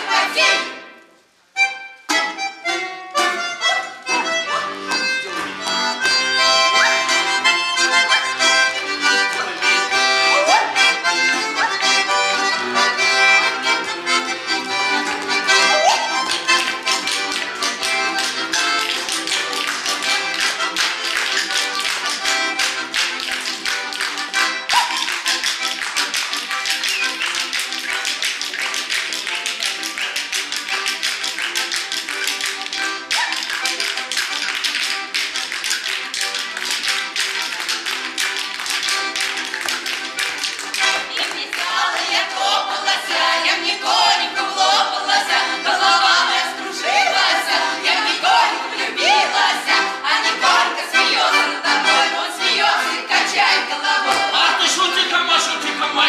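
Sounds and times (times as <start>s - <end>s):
balalaika: 0.0s - 56.0s
folk dance tune on accordion: 0.0s - 56.0s.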